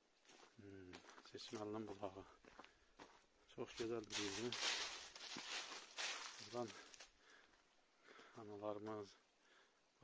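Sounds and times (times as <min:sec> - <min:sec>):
footsteps in dry leaves: 0:01.1 - 0:07.1.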